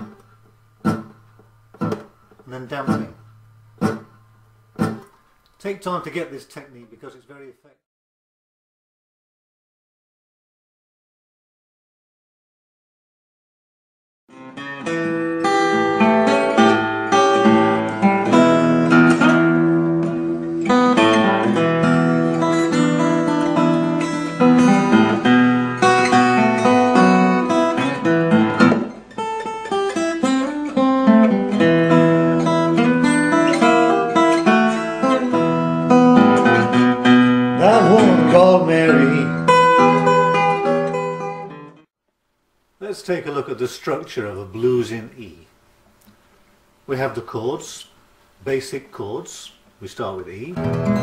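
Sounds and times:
fingerpicked acoustic guitar blues: 0.0 - 0.2, 0.8 - 4.2, 14.3 - 41.8, 50.6 - 51.0.

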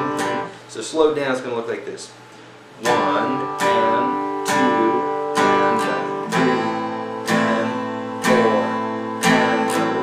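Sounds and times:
acoustic guitar strumming: 0.0 - 1.2, 2.2 - 10.0.

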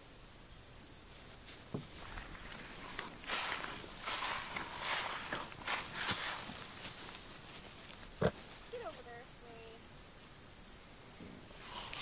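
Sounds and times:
goats rustling on grass: 0.7 - 10.1, 11.2 - 12.0.

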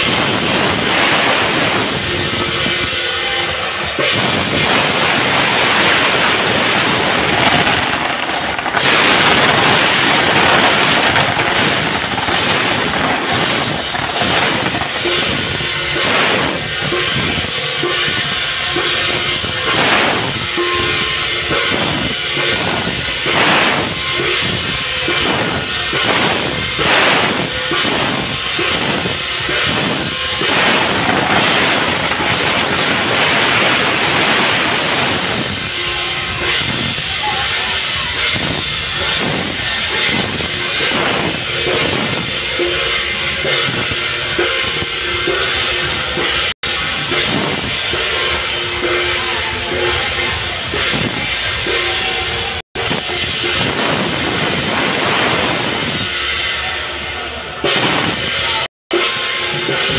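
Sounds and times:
cymbals: 0.0 - 59.9
drums: 0.0 - 59.9
firecrackers crackling: 0.0 - 59.9
gongs: 0.0 - 59.9.

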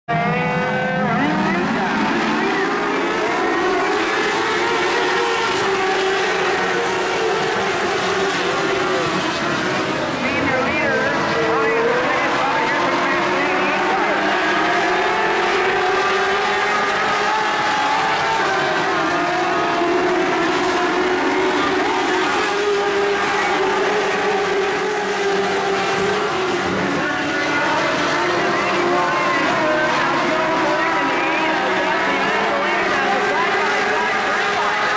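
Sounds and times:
race car engines: 0.1 - 34.9.

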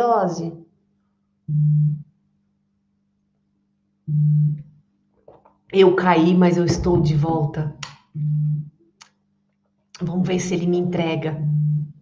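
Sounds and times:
faint steady hum: 0.0 - 12.0
low electronic buzzing tones: 1.5 - 2.2, 4.1 - 4.7, 8.1 - 8.8, 11.3 - 12.0.

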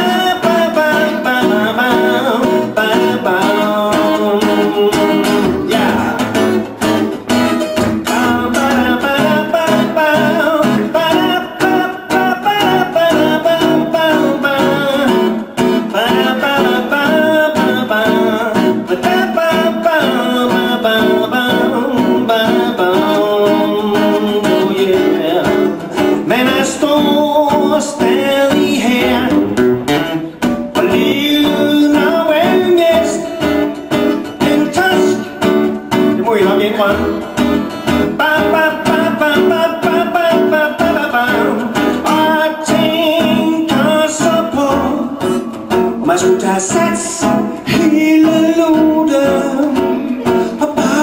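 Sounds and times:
acoustic guitar strumming: 0.0 - 51.0
man singing: 0.0 - 51.0.

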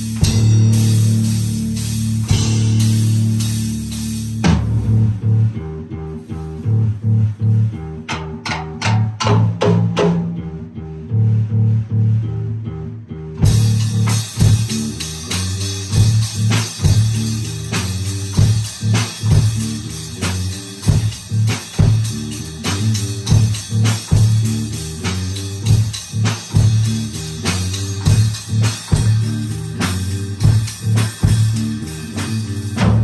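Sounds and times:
drums and cymbals: 0.0 - 10.3, 13.4 - 33.0
electric bass guitar riff: 0.0 - 33.0.

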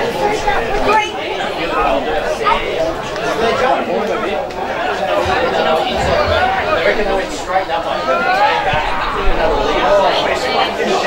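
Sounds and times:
overlapping chatter of spectators: 0.0 - 11.0.

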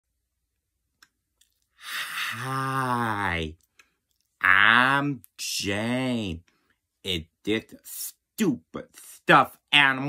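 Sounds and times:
man breathing out: 1.8 - 2.9.

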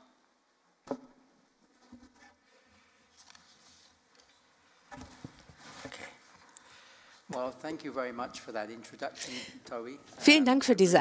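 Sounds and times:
soft rustles: 1.8 - 6.5.

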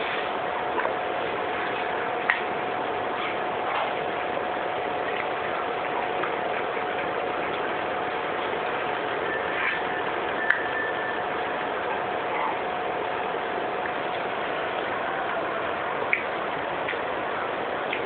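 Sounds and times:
faint hum tone: 0.0 - 18.0.

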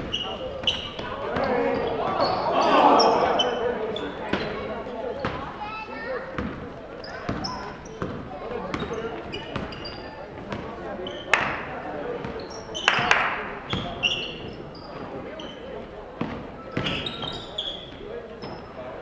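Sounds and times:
sneaker squeaks: 0.0 - 19.0
spectators' voices: 0.0 - 19.0
basketball bouncing on hardwood: 6.4 - 6.6, 7.3 - 8.9.

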